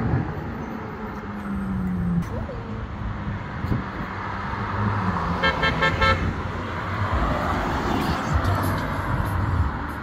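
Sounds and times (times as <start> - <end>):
car horn toots: 5.4 - 6.4.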